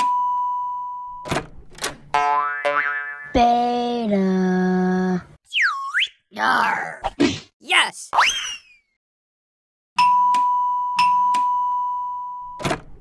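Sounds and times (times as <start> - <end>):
swooping boing: 2.2 - 3.4.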